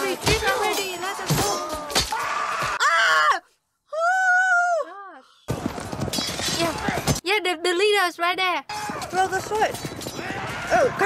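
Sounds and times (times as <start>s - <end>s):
clashing and shouting din: 0.0s - 3.4s, 8.7s - 11.0s.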